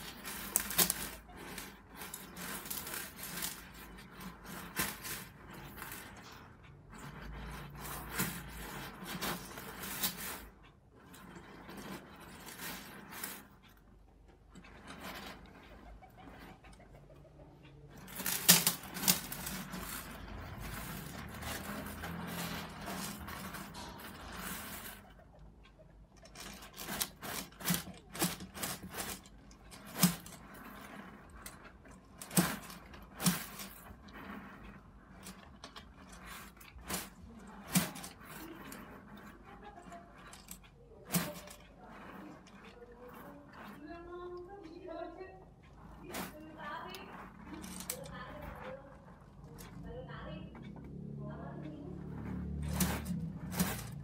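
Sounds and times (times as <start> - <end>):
scraping rustle: 0.0 - 25.4, 26.2 - 50.8, 51.6 - 54.0.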